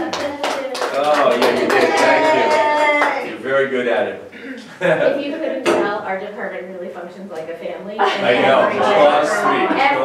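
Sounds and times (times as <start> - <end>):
small group clapping: 0.0 - 3.5
voices: 0.0 - 10.0.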